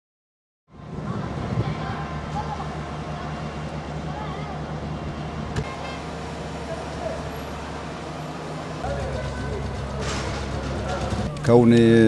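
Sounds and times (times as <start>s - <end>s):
vehicle engine running: 1.0s - 12.0s
background voices: 6.5s - 12.0s.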